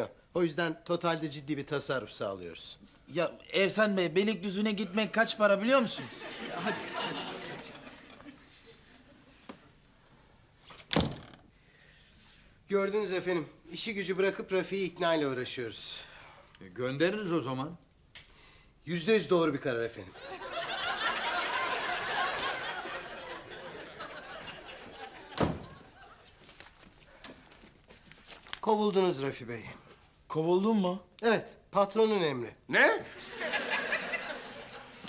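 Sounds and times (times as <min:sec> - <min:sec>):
wooden door slamming: 0:10.9 - 0:11.4, 0:25.3 - 0:25.8.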